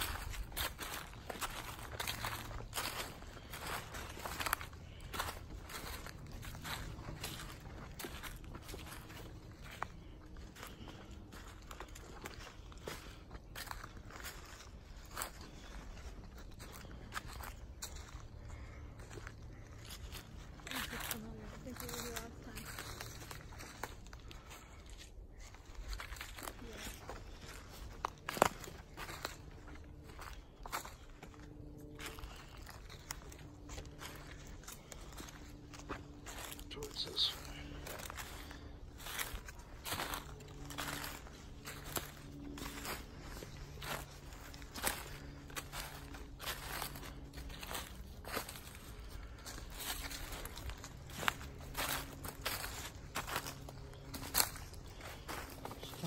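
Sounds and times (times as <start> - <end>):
faint low murmur: 0.0 - 56.0
footsteps crunching dry leaves: 0.0 - 56.0.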